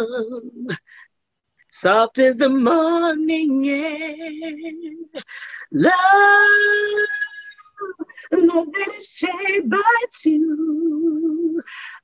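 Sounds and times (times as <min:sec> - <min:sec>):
woman singing a cappella: 0:00.0 - 0:01.0, 0:01.7 - 0:12.0.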